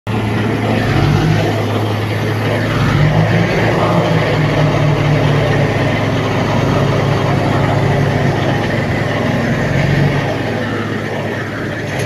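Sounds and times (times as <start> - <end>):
bulldozer diesel engine under load: 0.1 - 12.0.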